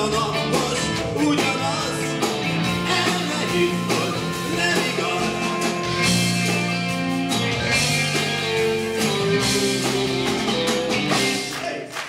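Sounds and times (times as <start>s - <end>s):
rock band playing: 0.0s - 11.7s.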